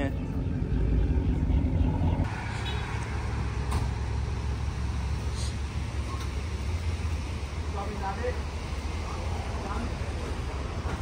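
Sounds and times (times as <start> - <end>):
car engine idling: 0.0 - 11.0
traffic noise: 0.0 - 11.0.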